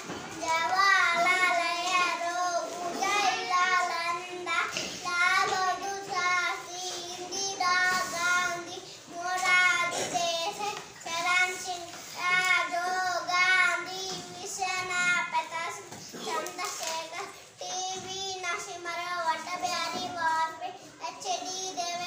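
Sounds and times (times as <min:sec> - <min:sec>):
boy chanting sing-song: 0:00.4 - 0:22.0.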